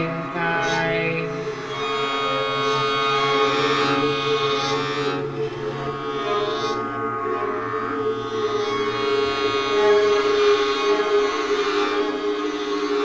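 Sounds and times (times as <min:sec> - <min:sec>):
violins playing sustained notes: 0:00.0 - 0:13.0.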